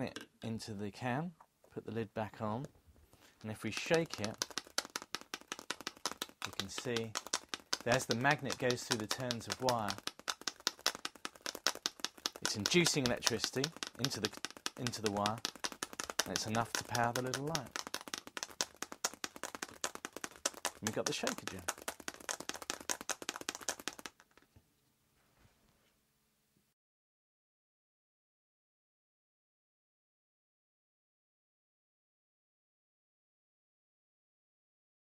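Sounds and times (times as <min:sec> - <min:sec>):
magnet rattling inside plastic can: 0:03.2 - 0:24.5.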